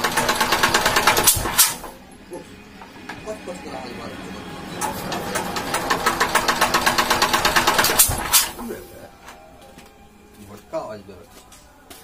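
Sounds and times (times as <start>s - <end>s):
diesel generator engine knocking: 0.0s - 1.6s, 4.8s - 8.3s.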